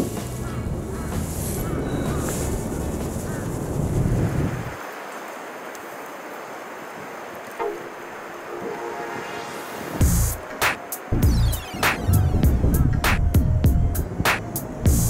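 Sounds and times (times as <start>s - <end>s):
wind buffeting microphone: 0.0s - 4.8s, 9.8s - 15.0s.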